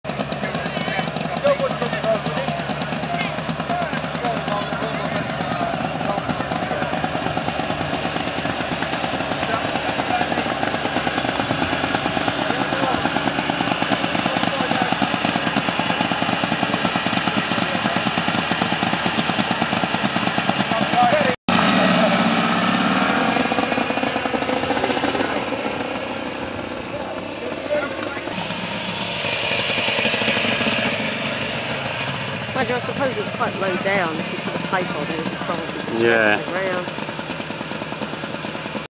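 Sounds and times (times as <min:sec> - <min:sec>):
car engine idling and revving: 0:00.0 - 0:38.9.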